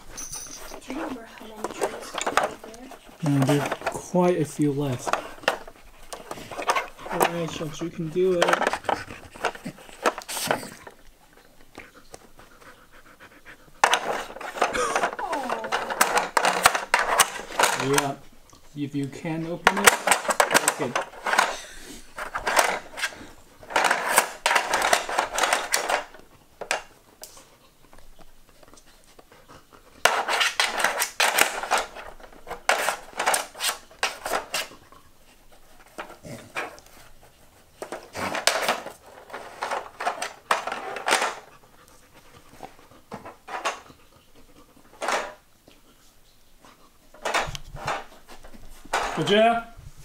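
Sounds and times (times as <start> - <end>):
plastic puzzle clattering: 0.0 - 12.3, 13.8 - 45.5, 47.1 - 49.7
dog panting: 5.0 - 15.1, 26.0 - 30.7, 41.3 - 47.2.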